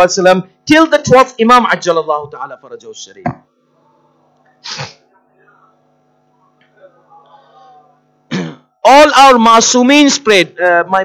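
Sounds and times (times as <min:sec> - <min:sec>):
man speaking: 0:00.0 - 0:03.4, 0:08.8 - 0:11.0
man clearing his throat: 0:06.8 - 0:08.7.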